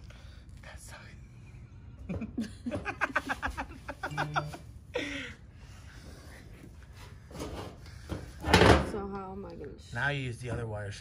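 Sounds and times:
person laughing: 2.1s - 5.4s.

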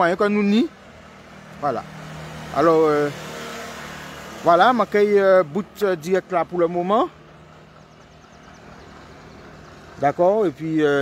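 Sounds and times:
vehicle driving on highway: 0.0s - 11.0s.

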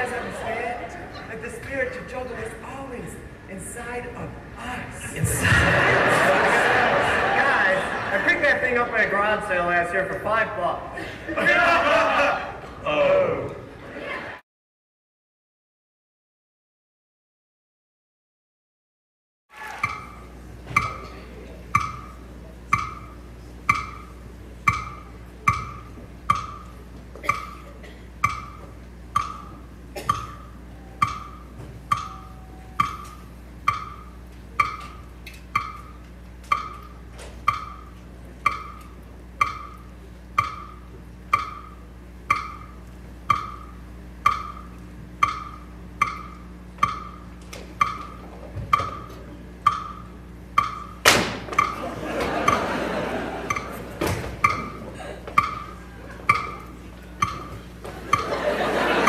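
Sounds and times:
clock ticking: 19.8s - 21.1s, 21.7s - 27.6s, 28.2s - 51.0s, 51.6s - 51.8s, 53.4s - 53.8s, 54.4s - 58.4s.

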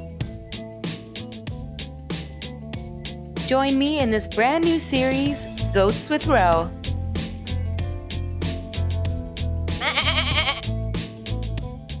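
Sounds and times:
background music with steady beat: 0.0s - 12.0s
goat bleating: 9.8s - 10.7s.

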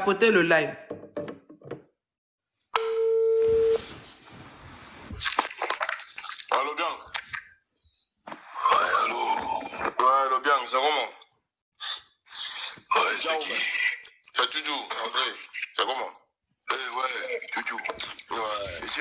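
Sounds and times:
voices from recording: 6.2s - 7.6s, 8.3s - 19.0s.

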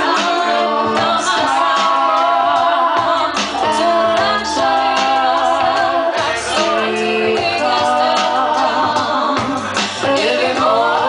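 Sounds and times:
held musical accompaniment: 0.0s - 11.0s
women singing into microphones: 0.0s - 11.0s.

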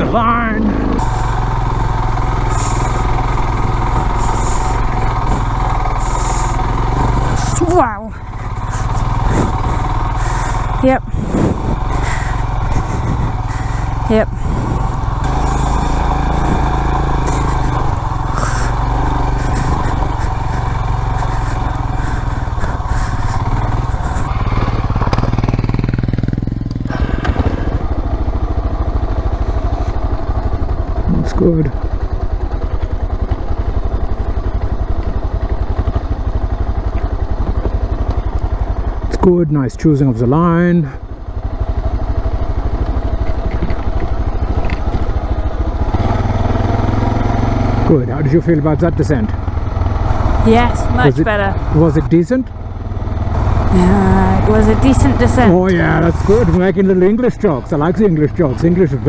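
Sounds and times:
motorcycle engine at low revs: 0.0s - 59.0s.

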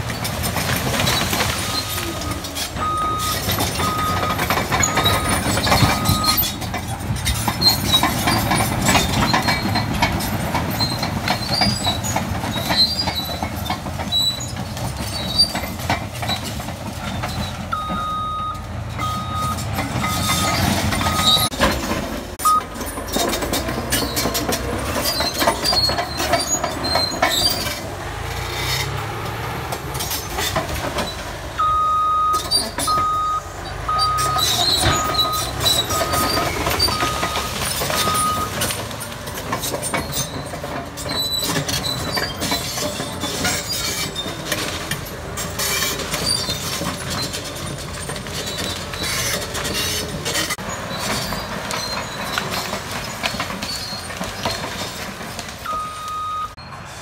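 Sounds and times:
bulldozer diesel engine under load: 0.0s - 57.0s
steel tracks clanking and squeaking: 0.0s - 57.0s
backup alarm beeping: 2.2s - 6.4s, 17.7s - 21.5s, 22.4s - 22.7s, 31.6s - 34.4s, 55.6s - 56.6s.

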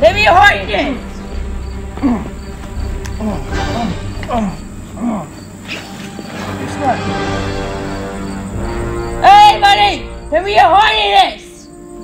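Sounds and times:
faint background music: 0.0s - 12.0s
insect-like chirping: 0.0s - 12.0s.

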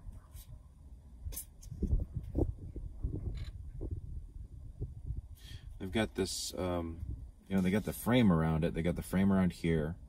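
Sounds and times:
wind rumble on microphone: 0.0s - 8.2s.

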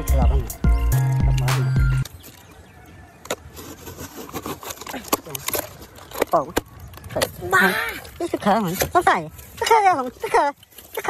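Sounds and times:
knife cutting cardboard and tape: 3.3s - 7.4s.

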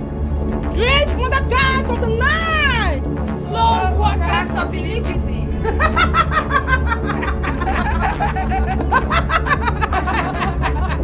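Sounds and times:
background music: 0.0s - 11.0s
women laughing: 5.5s - 11.0s.

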